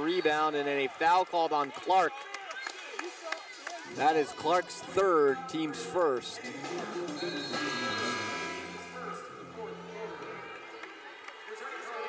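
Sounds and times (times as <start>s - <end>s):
crowd chatter: 0.0s - 12.0s
arena music: 3.9s - 10.6s.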